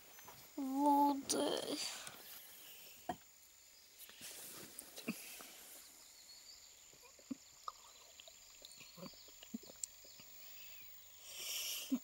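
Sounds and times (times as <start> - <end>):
faint steady high hiss: 0.0 - 12.0.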